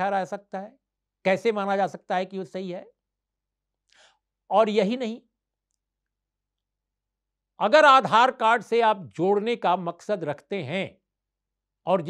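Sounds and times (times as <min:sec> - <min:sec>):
man speaking: 0:00.0 - 0:03.0, 0:04.5 - 0:05.3, 0:07.6 - 0:11.0.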